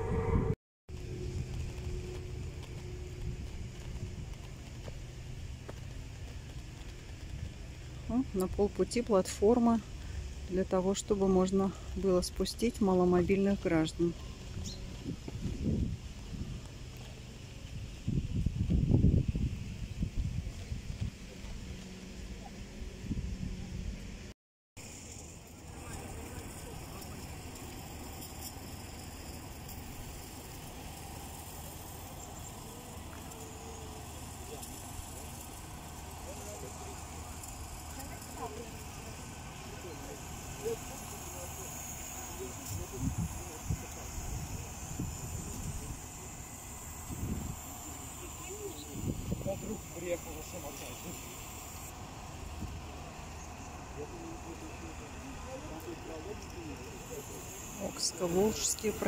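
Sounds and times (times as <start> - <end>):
distant people talking: 25.4 - 59.0.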